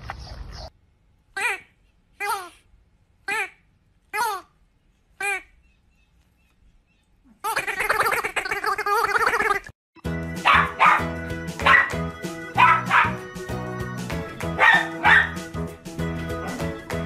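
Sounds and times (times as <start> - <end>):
upbeat background music: 10.0 - 17.0
small dog barking: 10.4 - 12.0, 12.6 - 13.2, 14.6 - 15.4.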